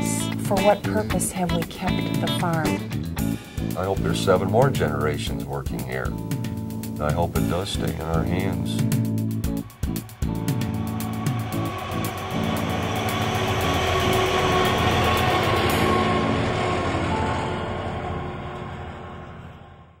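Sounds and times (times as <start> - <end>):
music: 0.0 - 20.0.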